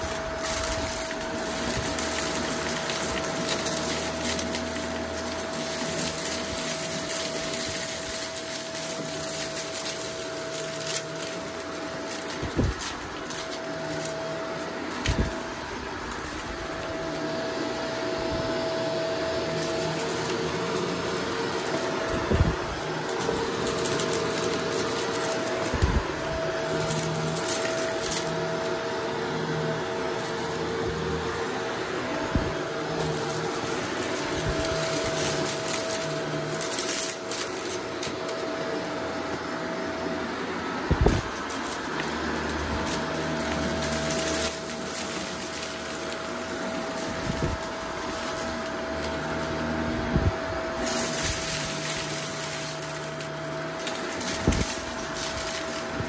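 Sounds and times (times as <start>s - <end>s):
debris crackling in nozzle: 0.0s - 56.0s
vacuum cleaner motor hum: 0.0s - 56.0s.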